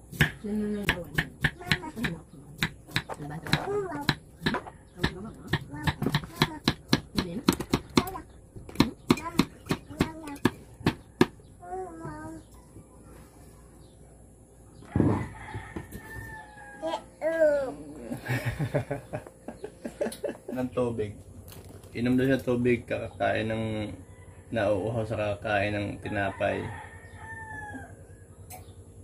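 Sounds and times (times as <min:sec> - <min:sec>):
knife chopping on wooden board: 0:00.1 - 0:11.4.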